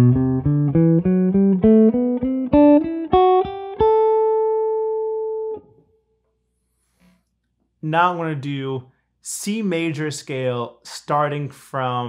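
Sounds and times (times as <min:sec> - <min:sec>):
electric guitar picking scale: 0:00.0 - 0:05.7.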